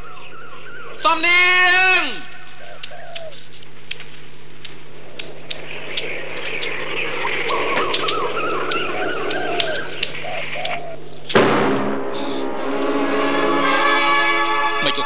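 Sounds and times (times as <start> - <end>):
birds chirping and cooing: 0.0 - 1.1, 2.3 - 3.6, 4.7 - 11.3
sharp soundtrack clicks: 1.0 - 13.3.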